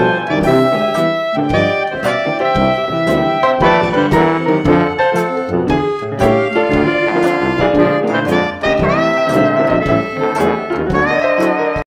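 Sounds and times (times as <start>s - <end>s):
horn note sliding up: 0.0s - 11.5s
jazz band music: 0.0s - 11.8s.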